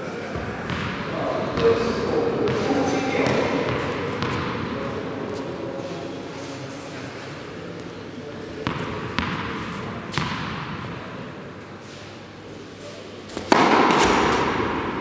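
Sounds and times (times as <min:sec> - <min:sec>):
voices: 0:00.0 - 0:09.0
tennis ball bouncing on hall floor: 0:00.3 - 0:05.4, 0:08.6 - 0:11.1, 0:13.3 - 0:15.0.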